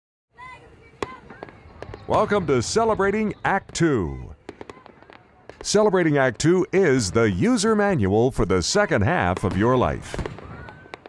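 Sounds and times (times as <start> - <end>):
firework bangs: 0.4 - 7.9, 9.1 - 11.0.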